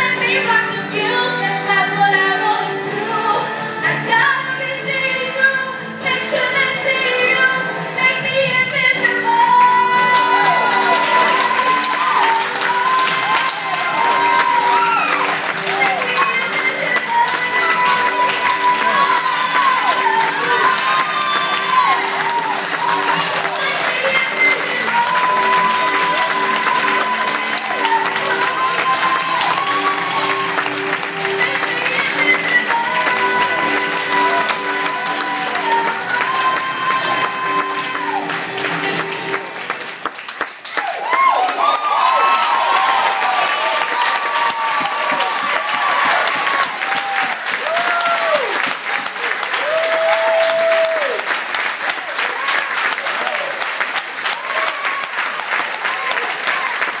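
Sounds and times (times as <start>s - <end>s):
music with long held notes: 0.0s - 39.9s
congregation applauding: 8.7s - 57.0s.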